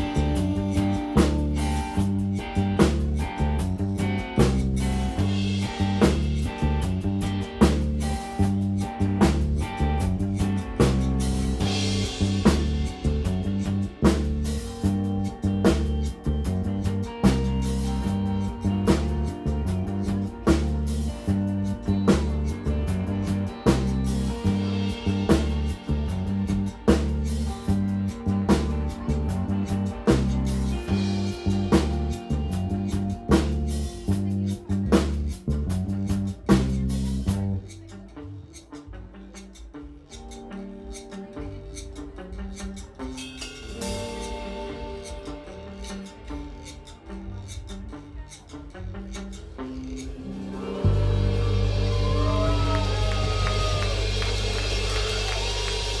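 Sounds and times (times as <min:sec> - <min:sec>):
live rock band playing: 0:00.0 - 0:37.7, 0:40.2 - 0:42.2, 0:43.0 - 0:46.2, 0:49.5 - 0:56.0
drum kit: 0:00.0 - 0:56.0
loud low sustained sound: 0:50.2 - 0:56.0.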